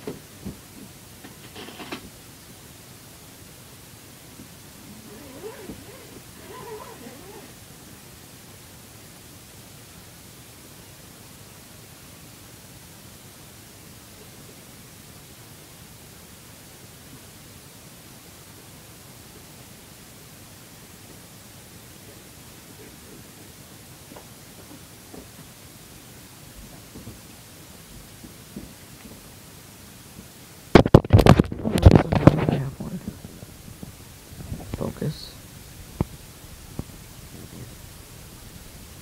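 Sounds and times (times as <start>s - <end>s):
steady recording hiss: 0.0s - 39.0s.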